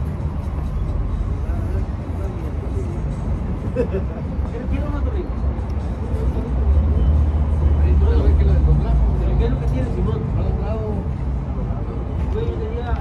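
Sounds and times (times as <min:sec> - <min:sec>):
large vehicle engine rumbling: 0:00.0 - 0:13.0.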